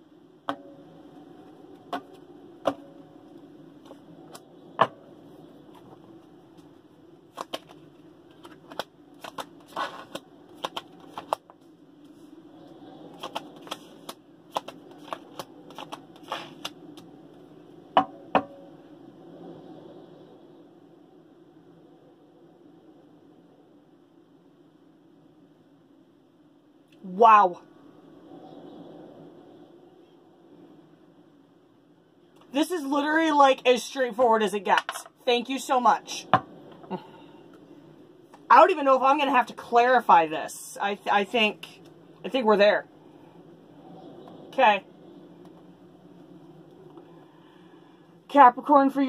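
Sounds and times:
faint steady hum: 0.0s - 49.0s
cards shuffled and dealt: 7.3s - 12.2s, 13.1s - 17.1s.

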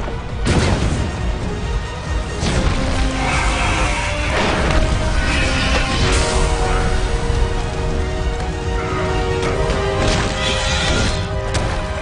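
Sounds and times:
dramatic orchestral music: 0.0s - 12.0s.

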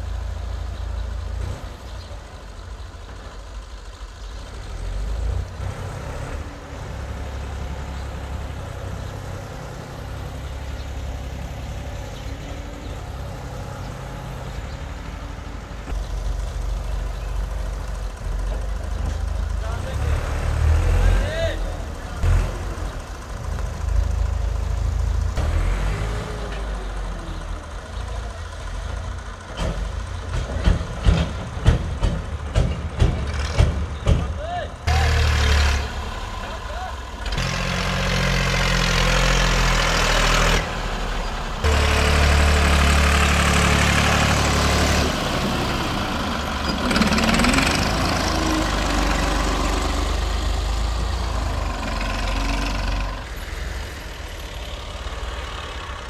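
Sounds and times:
tractor diesel engine under load: 0.0s - 56.0s
sharp knocks and clatters: 29.5s - 34.4s
loader blade pushing soil: 34.9s - 55.6s.

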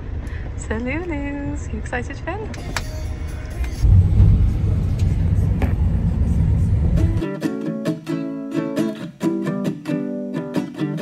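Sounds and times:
rumble inside moving car: 3.5s - 7.2s
plucked acoustic guitar music: 6.5s - 11.0s.

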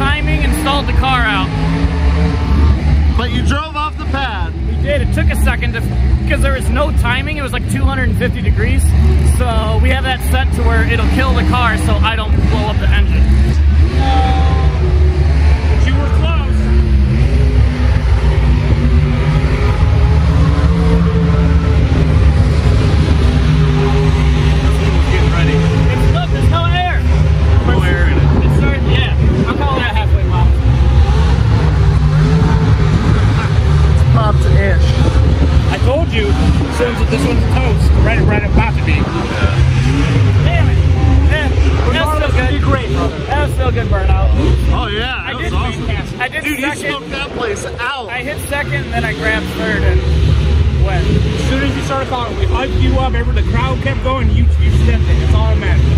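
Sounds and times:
car engine at high revs: 0.0s - 55.9s
faint voices: 0.0s - 55.9s.

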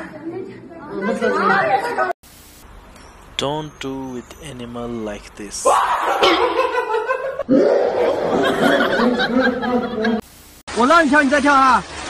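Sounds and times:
person laughing: 8.0s - 10.2s.

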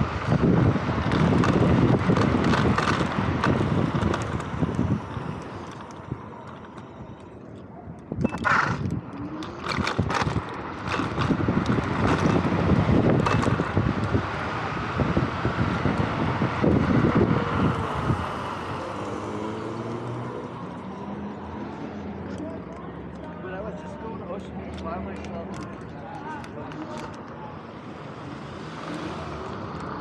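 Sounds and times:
wind buffeting microphone: 0.0s - 21.3s
scooter tyre noise: 0.0s - 24.1s.

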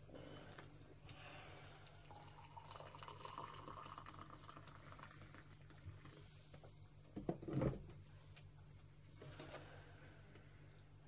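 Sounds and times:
water pouring into a mug: 1.8s - 6.2s.

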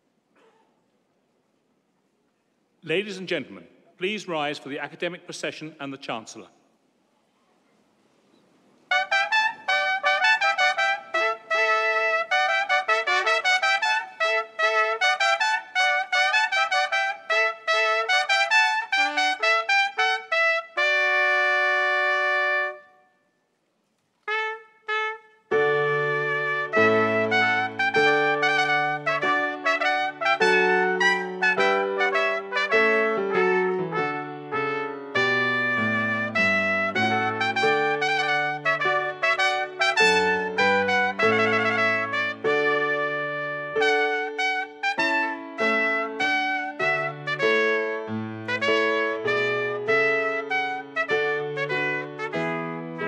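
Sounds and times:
brass processional music: 8.9s - 23.2s, 24.2s - 53.0s.

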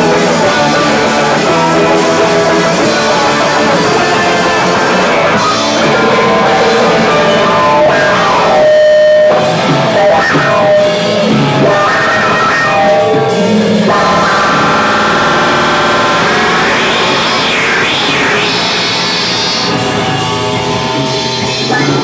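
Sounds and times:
drum kit with cymbals: 0.0s - 22.0s
electric bass: 0.0s - 22.0s
electric guitar: 0.0s - 22.0s.

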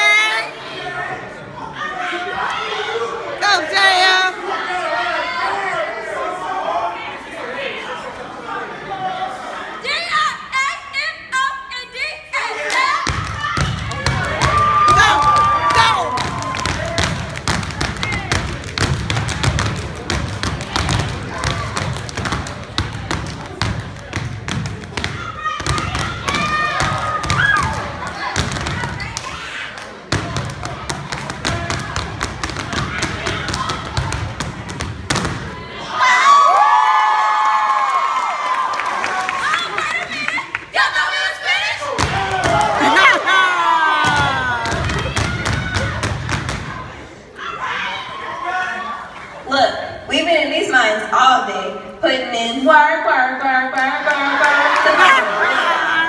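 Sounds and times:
people shouting and cheering: 0.0s - 50.2s, 53.2s - 56.0s
fast rhythmic clapping: 13.8s - 35.3s.

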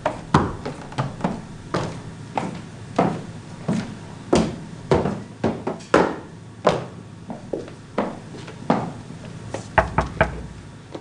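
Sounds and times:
knocks on wooden door: 9.8s - 10.5s.

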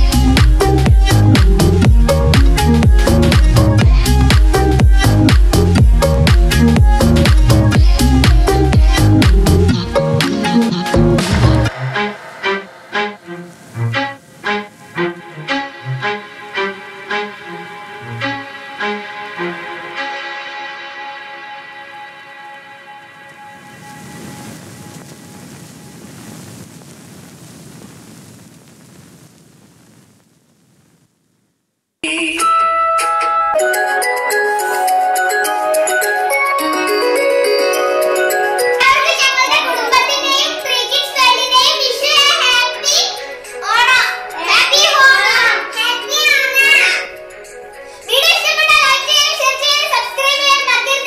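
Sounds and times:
music with held notes: 0.0s - 24.1s, 32.0s - 48.6s
steady hiss: 10.3s - 31.6s
children's voices: 38.1s - 51.0s.

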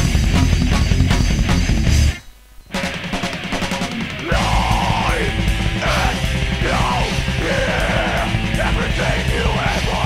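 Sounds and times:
punk metal song: 0.0s - 10.0s.

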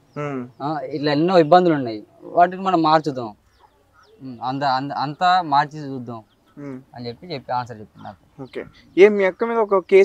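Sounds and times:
man speaking: 0.2s - 3.4s, 4.2s - 10.0s.

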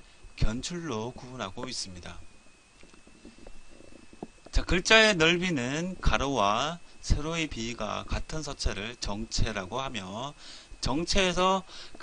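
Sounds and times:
high-pitched whine: 0.0s - 12.0s
recording hiss: 0.0s - 12.0s.

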